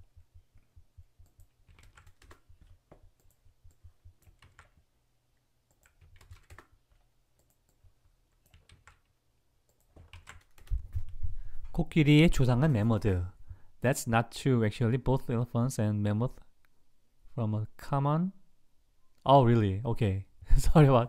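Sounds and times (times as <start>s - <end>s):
computer keyboard typing: 0.5s - 4.8s, 5.7s - 11.2s.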